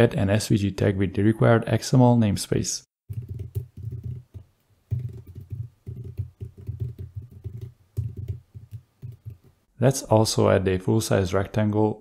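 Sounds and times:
typing on computer keyboard: 0:03.1 - 0:09.5.

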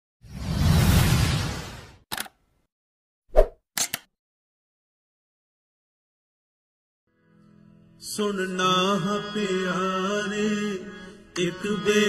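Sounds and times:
quick clicks: 0:03.8 - 0:04.1.

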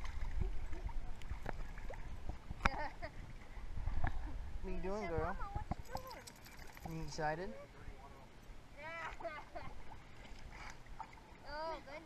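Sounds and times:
dog splashing in water: 0:05.8 - 0:07.2.

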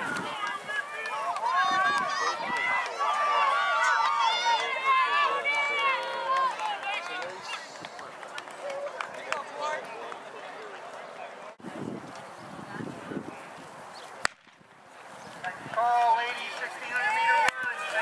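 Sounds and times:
spectators shouting and cheering: 0:00.0 - 0:11.5, 0:15.4 - 0:18.0.

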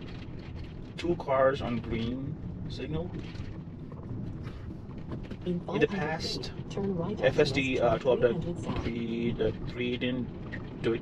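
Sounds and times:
tyre and road noise: 0:00.0 - 0:11.0.

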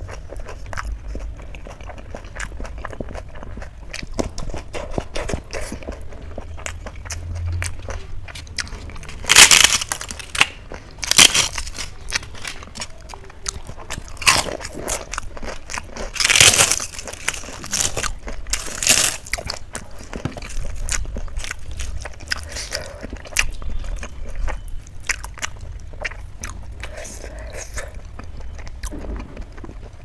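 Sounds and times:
crunchy bites and chewing: 0:00.0 - 0:30.0
wet chewing clicks: 0:00.0 - 0:30.0.

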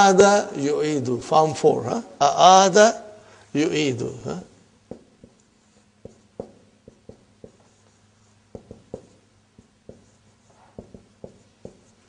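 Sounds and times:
marker squeaking on whiteboard: 0:08.6 - 0:12.0.

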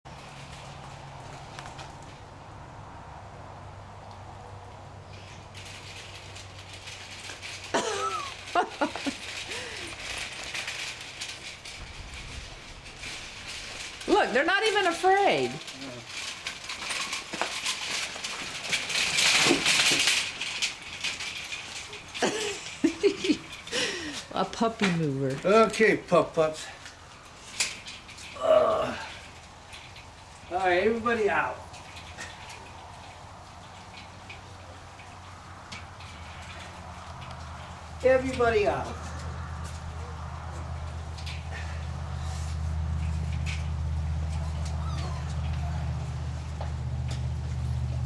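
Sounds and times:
wire cart rattling: 0:00.1 - 0:02.6, 0:03.9 - 0:48.0
light rain falling: 0:00.1 - 0:48.0
crunching on gravel: 0:04.6 - 0:24.3
steady low hum: 0:09.4 - 0:14.4
short squeaks: 0:44.4 - 0:45.9.

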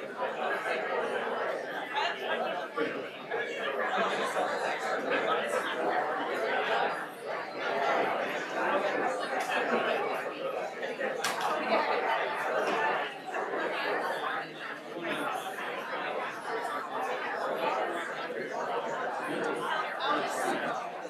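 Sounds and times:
murmur of crowd talking: 0:00.0 - 0:21.0.

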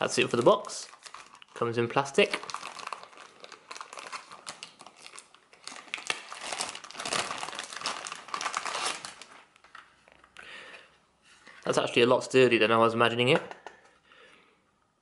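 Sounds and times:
plastic bag crinkling: 0:00.0 - 0:10.3.

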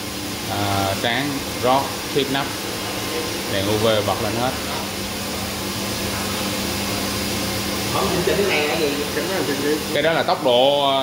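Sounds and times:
machine running with low hum: 0:00.0 - 0:11.0.

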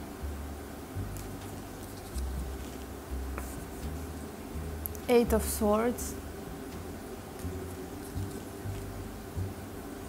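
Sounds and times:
card stock rubbing: 0:01.4 - 0:04.2.

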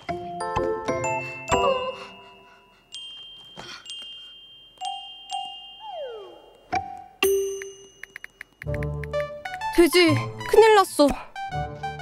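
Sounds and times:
playful chime music: 0:00.0 - 0:10.4
falling pitch glide: 0:05.8 - 0:06.6.

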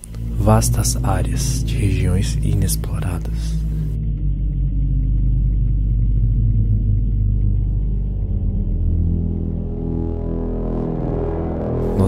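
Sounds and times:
low rumbling music drone: 0:00.0 - 0:12.0.

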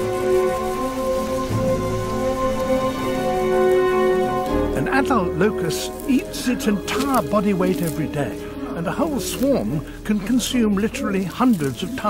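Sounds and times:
locust swarm rustling in flight: 0:00.0 - 0:12.0
music with long held chords: 0:00.0 - 0:12.0.

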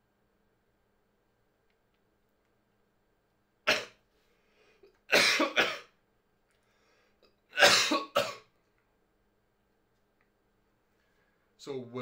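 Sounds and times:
man coughing: 0:05.1 - 0:05.9, 0:07.6 - 0:08.5.

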